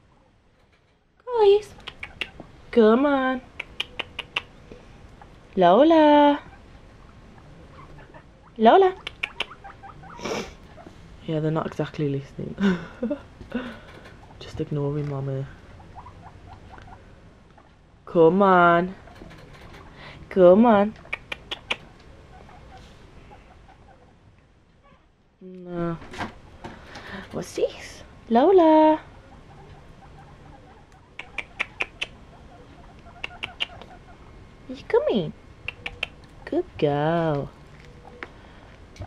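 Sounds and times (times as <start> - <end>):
guinea pig squeaking: 1.6 - 2.5, 3.5 - 4.6, 6.2 - 10.9, 15.6 - 17.0, 18.4 - 20.0, 20.6 - 22.9, 29.0 - 34.9, 35.6 - 36.5.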